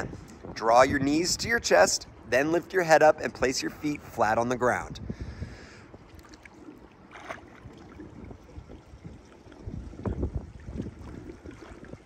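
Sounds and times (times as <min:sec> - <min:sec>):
pool water sloshing and lapping: 0:05.9 - 0:12.0
water splashes: 0:06.0 - 0:12.0.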